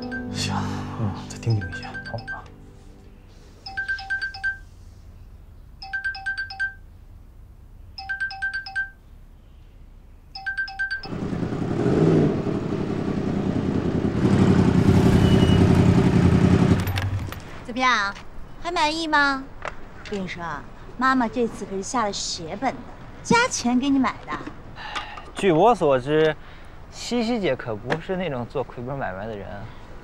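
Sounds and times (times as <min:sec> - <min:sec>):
phone ringtone beeps: 0:00.0 - 0:00.4, 0:01.5 - 0:02.5, 0:03.6 - 0:04.7, 0:05.8 - 0:06.8, 0:08.0 - 0:09.0, 0:10.4 - 0:11.1
motorcycle engine revving: 0:11.1 - 0:17.2.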